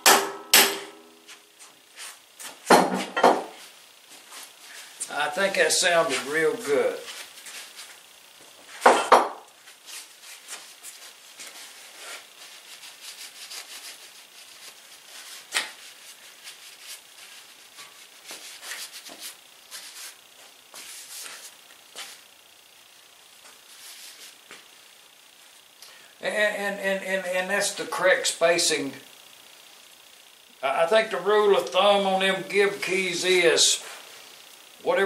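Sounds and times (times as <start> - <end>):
sharp knocks on metal: 0.0 - 1.1, 2.7 - 3.5, 8.8 - 9.4.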